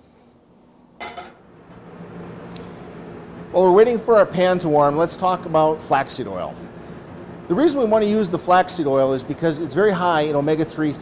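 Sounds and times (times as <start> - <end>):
pan clattering on stovetop: 1.0 - 1.4.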